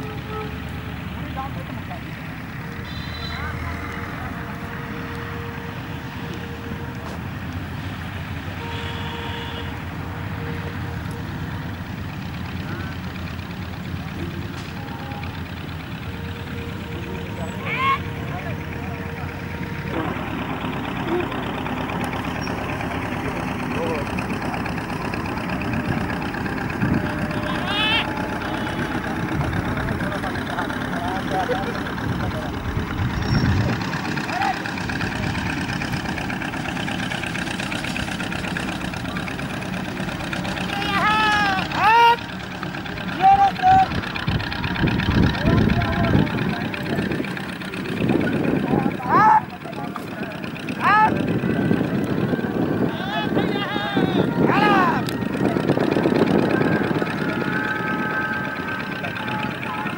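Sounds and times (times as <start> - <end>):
engine noise: 0.0 - 59.9.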